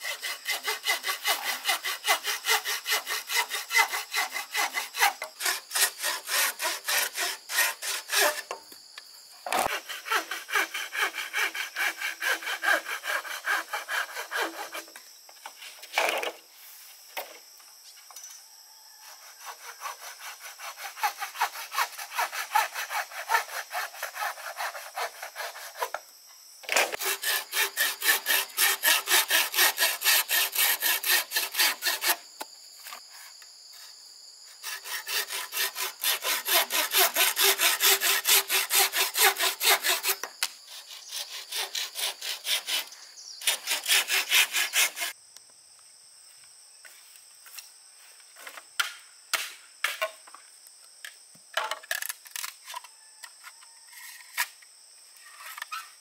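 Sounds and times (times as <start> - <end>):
saw rasping through bamboo: 0.0 - 8.6, 9.5 - 15.0, 19.0 - 26.0, 26.7 - 32.3, 34.5 - 45.2.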